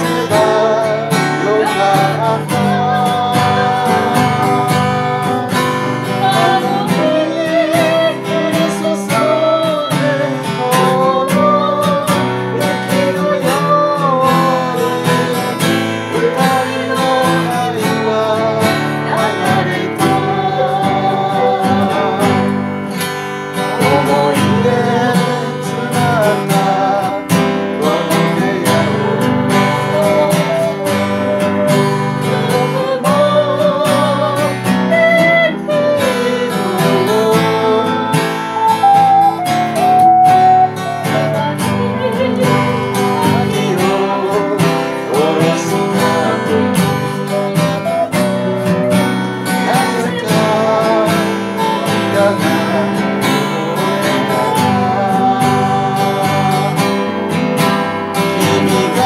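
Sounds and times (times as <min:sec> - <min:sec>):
group of voices singing: 0:00.0 - 0:59.0
strummed acoustic guitar: 0:00.0 - 0:59.0.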